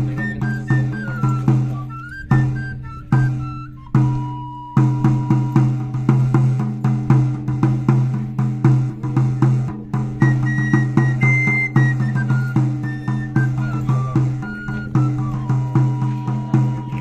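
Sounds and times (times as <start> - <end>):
high pipe melody: 0.0 - 6.9, 7.5 - 17.0
drum steady beat: 0.0 - 17.0.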